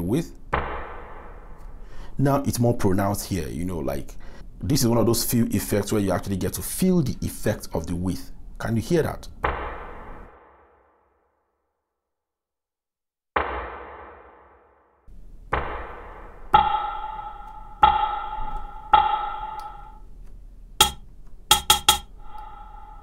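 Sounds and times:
metallic pings: 0:16.5 - 0:20.1, 0:20.8 - 0:23.0
noisy drum hits with reverb: 0:20.8 - 0:23.0.

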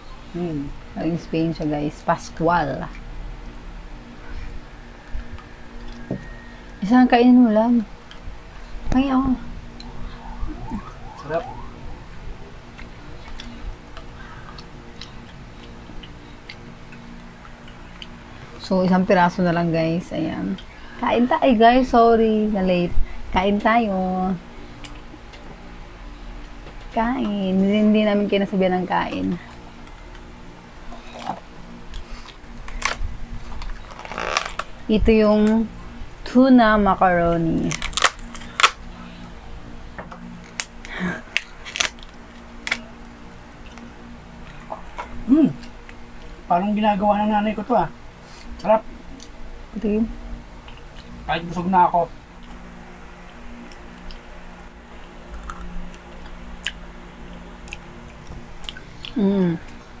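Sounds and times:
faint steady hum: 0:00.0 - 1:00.0.

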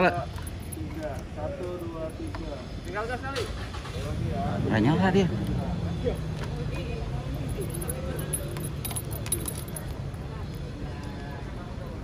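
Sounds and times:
faint murmured voices: 0:00.0 - 0:12.0
light metallic clinks: 0:07.2 - 0:10.0
keys jingling: 0:07.3 - 0:10.0.

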